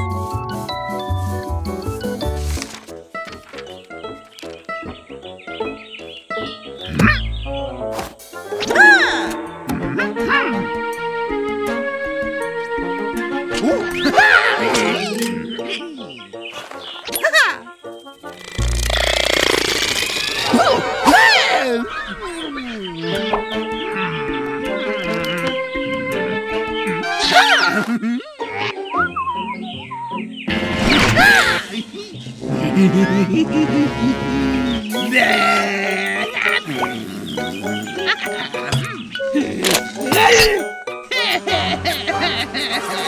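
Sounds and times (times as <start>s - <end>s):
cartoon background music: 0.0s - 43.0s
squeaky warbling cartoon voice: 17.1s - 17.7s, 27.2s - 27.8s
fast rattling screech: 18.4s - 20.8s.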